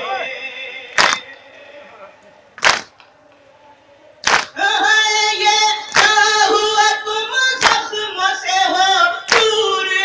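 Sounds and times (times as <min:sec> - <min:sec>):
man singing through amplifier: 0:00.0 - 0:10.0
palms slapping chests in unison: 0:01.0 - 0:01.2, 0:02.6 - 0:03.1, 0:04.2 - 0:04.6, 0:05.9 - 0:06.3, 0:07.6 - 0:08.0, 0:09.3 - 0:09.6.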